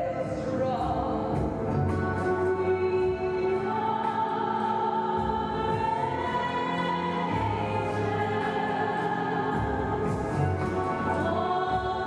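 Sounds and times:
choral voices: 0.0s - 12.0s
operatic singing: 0.0s - 12.0s.

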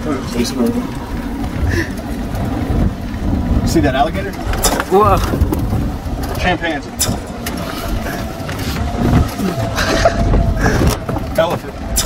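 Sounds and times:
golf cart rumbling on dirt: 0.0s - 12.0s
knocks and rattles: 1.3s - 12.0s.

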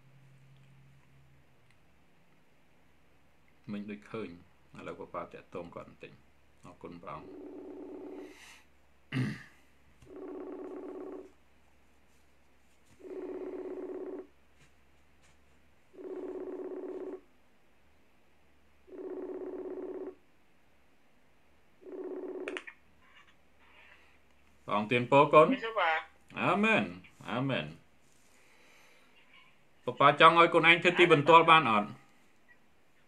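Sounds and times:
person coughing: 9.1s - 9.6s
buzzy ringing tone: 13.0s - 14.3s.

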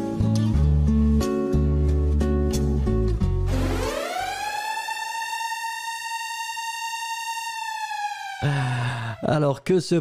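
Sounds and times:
electronic tone gliding up: 3.5s - 8.4s.

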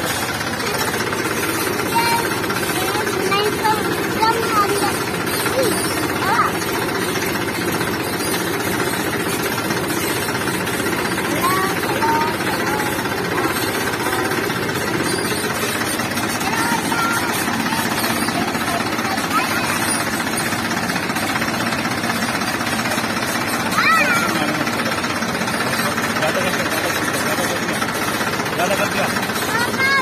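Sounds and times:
tractor diesel engine running: 0.0s - 30.0s.

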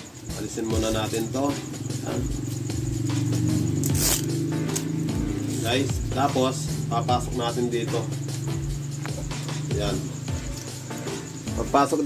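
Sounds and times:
background music low tones: 0.0s - 12.0s
bag fastening rasp: 3.8s - 4.3s.

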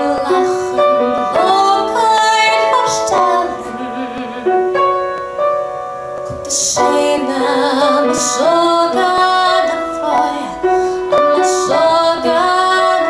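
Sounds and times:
woman singing with vibrato: 0.0s - 5.2s, 6.3s - 13.0s
upright piano: 0.0s - 13.0s.

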